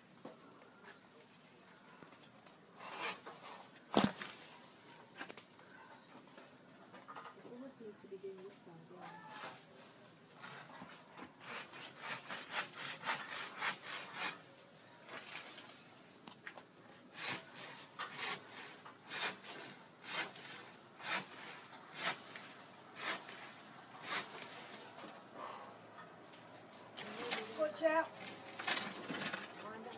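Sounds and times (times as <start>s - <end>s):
hand saw cutting wood: 2.8s - 3.6s, 10.4s - 14.5s, 17.1s - 24.9s.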